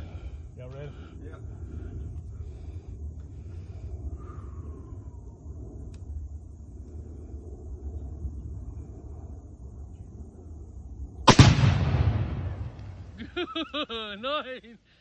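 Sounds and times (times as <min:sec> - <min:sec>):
explosion blast with rumble: 0:11.2 - 0:13.2
rifle shot: 0:11.2 - 0:13.2.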